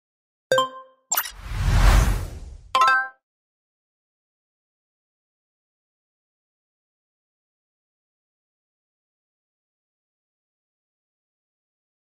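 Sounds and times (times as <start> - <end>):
quick swish: 1.2 - 2.7
whoosh with deep rumble: 1.4 - 2.7.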